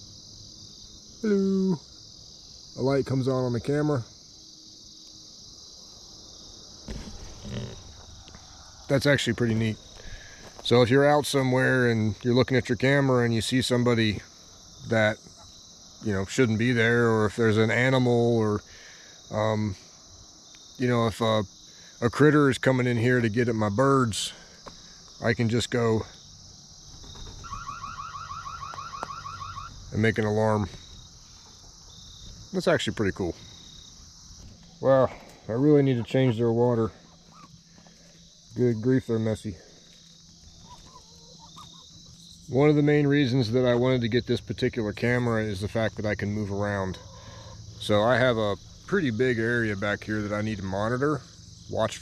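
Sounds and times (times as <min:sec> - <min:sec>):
crickets chirring: 0:00.0 - 0:52.0
handling noise: 0:06.8 - 0:08.6
electronic siren whoops: 0:27.4 - 0:29.8.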